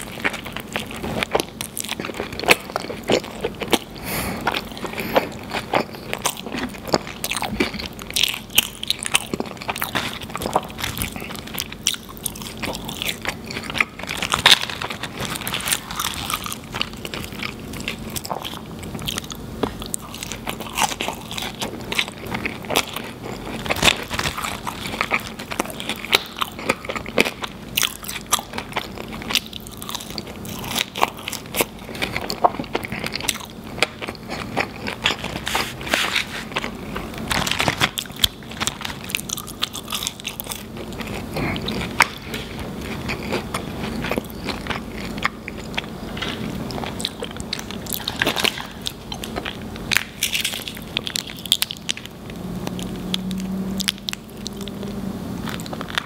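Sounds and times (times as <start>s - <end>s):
close-miked chewing: 0.0s - 56.0s.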